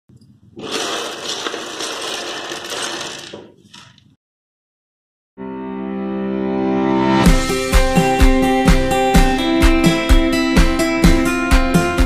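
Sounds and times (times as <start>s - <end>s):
plastic blocks clattering on table: 0.5s - 4.1s.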